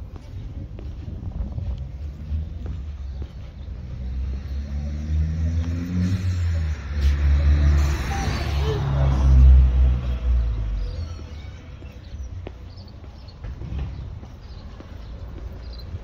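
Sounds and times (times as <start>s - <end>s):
vehicle engine passing by: 1.6s - 11.8s.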